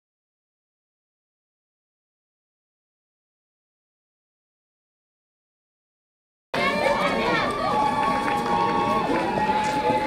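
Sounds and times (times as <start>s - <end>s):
crowd voices: 6.6s - 10.0s.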